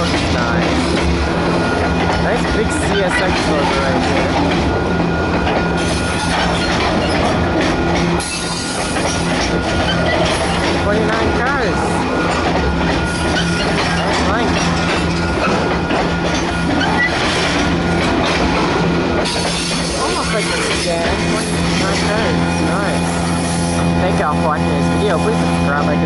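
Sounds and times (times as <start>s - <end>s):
freight train cars rolling past: 0.0s - 26.0s
train wheels squealing on rail: 5.7s - 7.4s, 8.2s - 10.7s, 11.4s - 18.4s.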